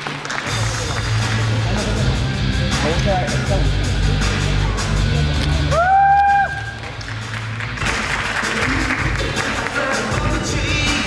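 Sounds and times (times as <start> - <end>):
music with steady beat: 0.4 - 11.0
audience cheering and applause: 5.6 - 10.4.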